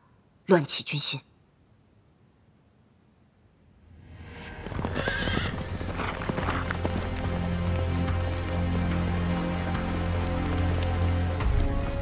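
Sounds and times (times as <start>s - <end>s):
low droning music score: 3.8s - 12.0s
horse whinnying: 4.6s - 6.7s
hoofbeats clattering: 4.6s - 12.0s.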